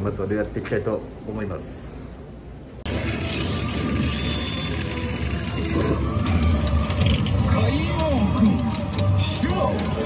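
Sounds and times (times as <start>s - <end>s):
machine music and sound effects: 2.8s - 10.0s.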